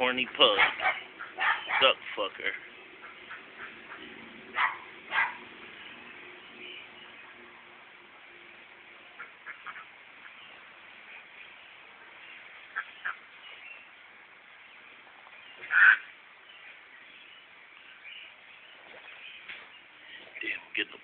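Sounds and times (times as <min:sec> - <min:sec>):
duck quacking: 0:00.4 - 0:02.0, 0:03.0 - 0:05.4, 0:09.2 - 0:10.5, 0:12.7 - 0:13.2, 0:15.7 - 0:16.1.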